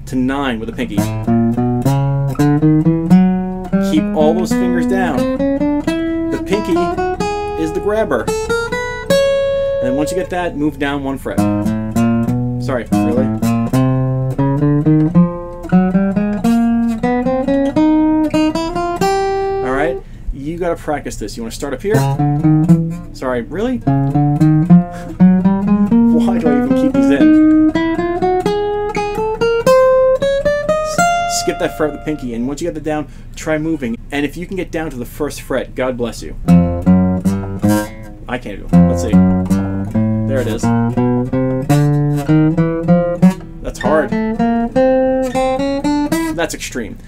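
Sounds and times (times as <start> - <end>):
acoustic guitar single notes: 0.8 - 20.3, 21.9 - 32.5, 36.4 - 46.6.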